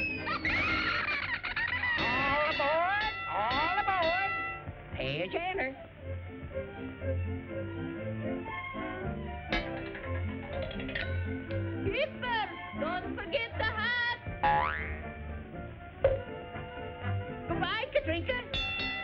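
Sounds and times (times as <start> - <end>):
cartoon orchestral music: 0.0 - 19.0.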